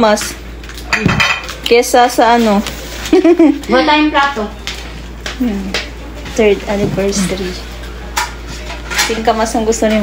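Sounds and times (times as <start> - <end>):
cutlery and dishware clinking: 0.2 - 1.8, 8.1 - 9.6.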